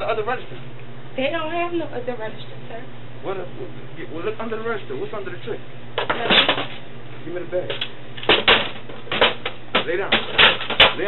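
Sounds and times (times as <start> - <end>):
low electrical hum: 0.0 - 11.0
clatters and knocks of objects: 6.0 - 6.8, 7.7 - 11.0.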